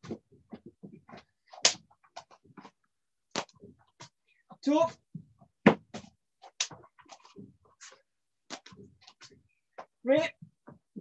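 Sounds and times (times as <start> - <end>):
bare feet thudding on mat: 5.1 - 7.6.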